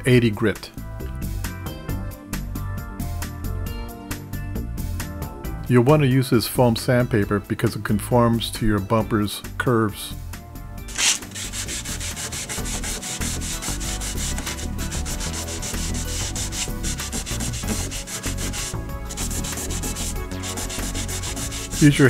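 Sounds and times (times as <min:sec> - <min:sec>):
sanding sponge rasping on paint: 0:10.9 - 0:22.0.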